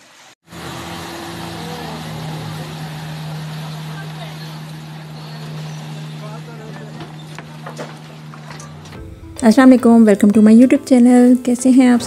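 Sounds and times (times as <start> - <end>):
rushing water: 0.0 - 9.0
boat engine running: 0.5 - 12.0
fountain water trickling: 0.6 - 8.3.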